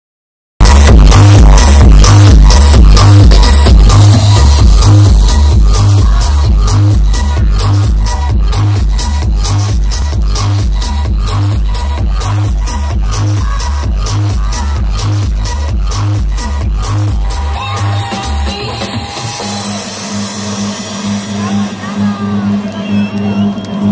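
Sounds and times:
heavy kick drum: 0.6 - 17.3
loud techno music: 0.6 - 23.9.

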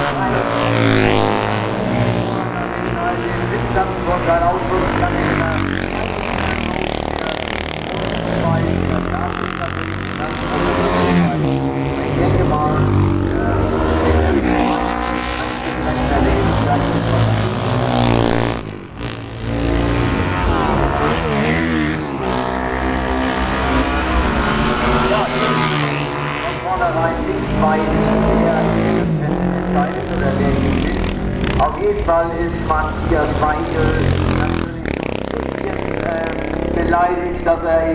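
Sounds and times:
racing motorcycles accelerating past: 0.0 - 37.9.

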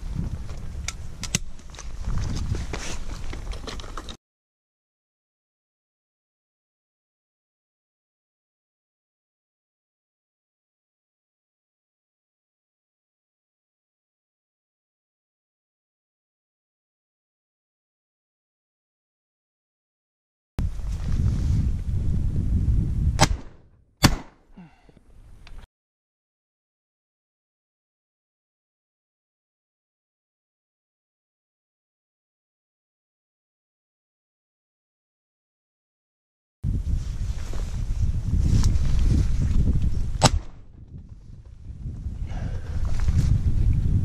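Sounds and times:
low rumbling on microphone: 0.0 - 3.7, 20.6 - 23.2, 36.7 - 44.0
shotgun shots: 23.2 - 24.4, 40.2 - 40.6.

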